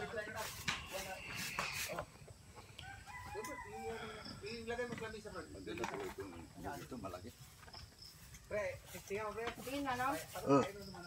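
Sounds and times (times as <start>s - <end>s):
faint rooster crowing: 2.6s - 4.7s.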